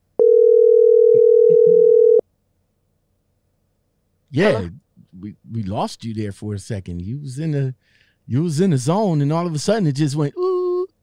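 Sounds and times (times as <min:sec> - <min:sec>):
telephone ringback tone: 0:00.2 - 0:02.2.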